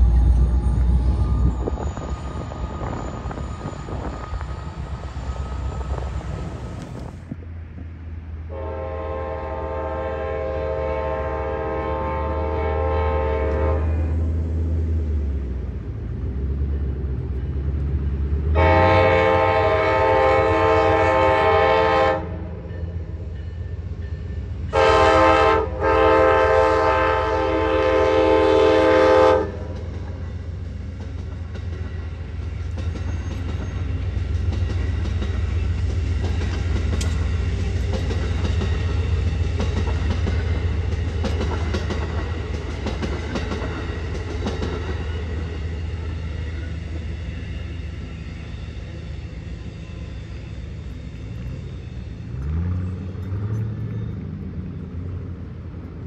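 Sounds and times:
train rumble: 0.0 - 56.0
train air horn blasts: 8.5 - 14.2, 18.5 - 22.7, 24.7 - 29.8
wheels clattering on rails: 29.6 - 56.0.

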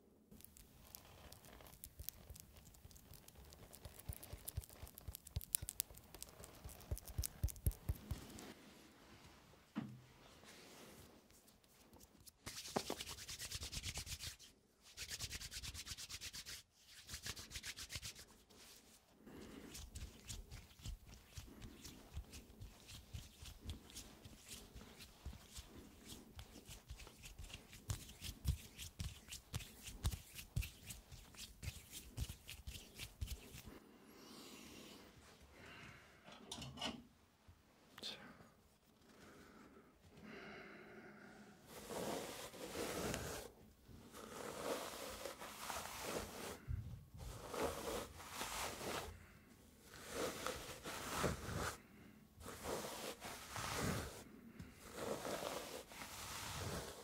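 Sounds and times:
hands rubbing sticky pomade: 0.4 - 8.6, 11.6 - 33.8, 41.7 - 43.5, 44.1 - 46.6, 47.2 - 49.1, 49.9 - 51.8, 52.4 - 54.2, 54.8 - 57.0.

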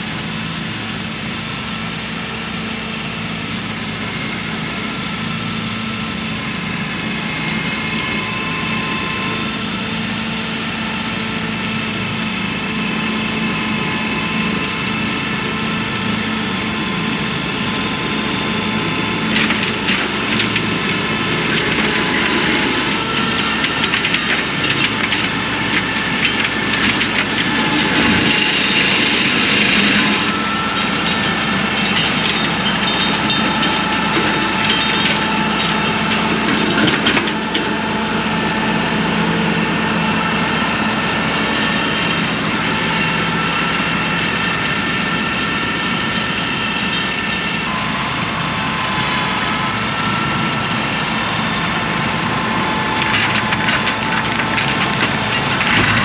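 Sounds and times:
tractor engine under load: 0.0 - 56.0.

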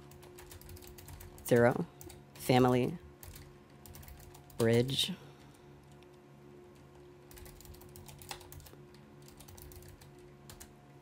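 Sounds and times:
keyboard typing: 0.0 - 5.0, 6.7 - 10.7.

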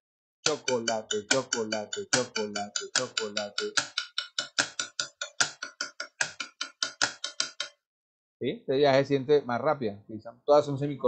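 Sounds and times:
quick percussive taps: 0.5 - 7.8.

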